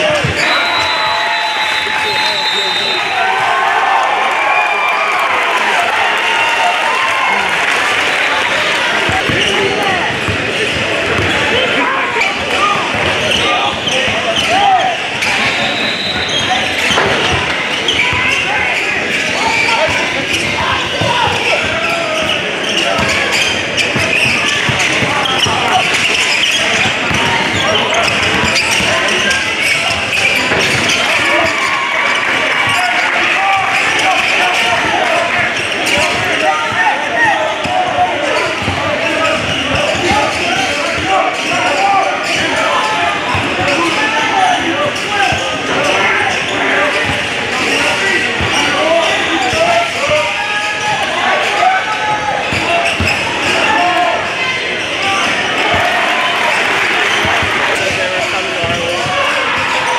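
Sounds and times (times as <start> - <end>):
voices in gym hall: 0.0 - 59.9.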